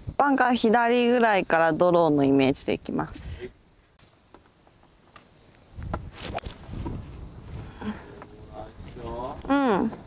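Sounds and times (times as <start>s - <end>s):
insects chirring: 0.0s - 10.0s
wind buffeting microphone: 5.6s - 10.0s.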